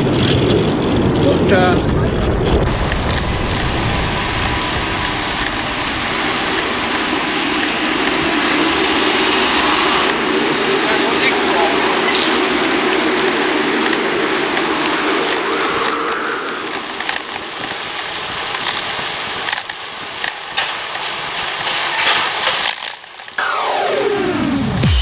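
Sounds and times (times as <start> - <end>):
wind on microphone: 0.0 - 20.2
bicycle rolling noise: 0.0 - 23.4
falling electronic sweep: 23.4 - 25.0.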